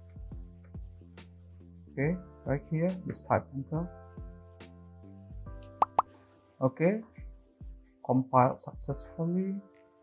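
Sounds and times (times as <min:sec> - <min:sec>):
soft background music: 0:00.0 - 0:10.0
quick pops: 0:05.7 - 0:06.1.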